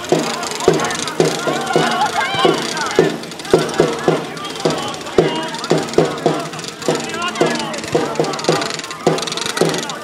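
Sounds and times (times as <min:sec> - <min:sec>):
children and spectators shouting: 0:00.0 - 0:10.0
steady low beat: 0:00.0 - 0:10.0.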